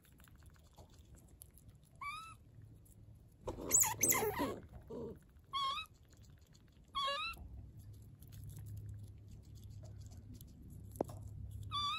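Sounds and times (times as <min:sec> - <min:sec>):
small pet squeaky calls: 0:02.0 - 0:02.4, 0:03.5 - 0:04.6, 0:05.5 - 0:06.0, 0:06.9 - 0:07.4, 0:11.7 - 0:11.9.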